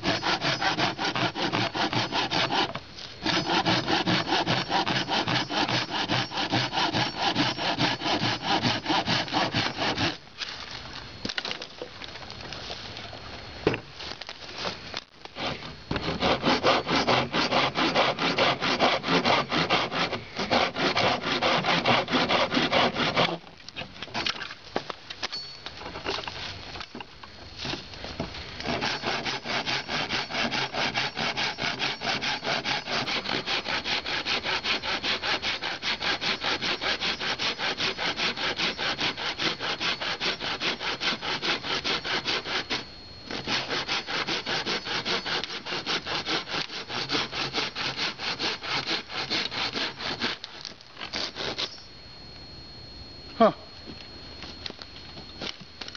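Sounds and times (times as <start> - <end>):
machete sawing tree branch: 0.0 - 10.7, 14.6 - 23.5, 28.6 - 51.8.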